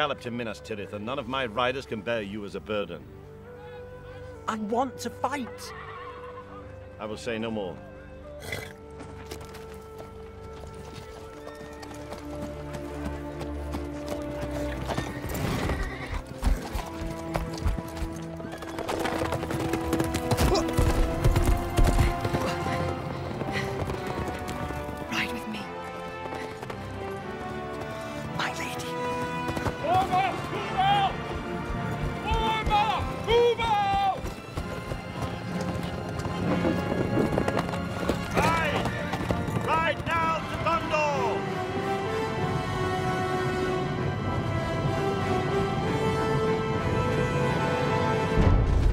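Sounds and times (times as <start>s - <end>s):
orchestral film score: 0.0s - 48.9s
horse whinnying: 5.7s - 6.7s, 8.4s - 8.8s, 14.9s - 16.4s
horses galloping over dirt: 8.4s - 41.3s.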